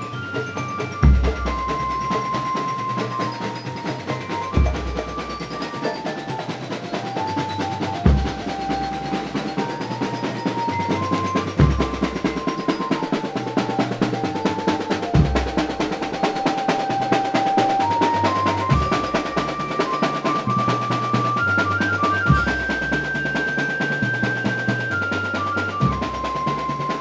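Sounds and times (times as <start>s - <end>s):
held note melody: 0.0s - 27.0s
snare drum strokes: 0.6s - 27.0s.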